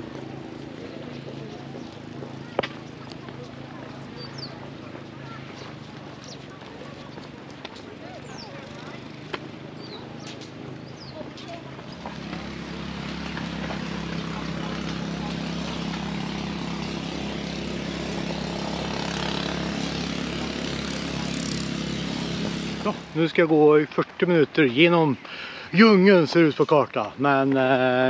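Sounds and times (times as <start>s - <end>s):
motor engine running: 0.0s - 23.3s.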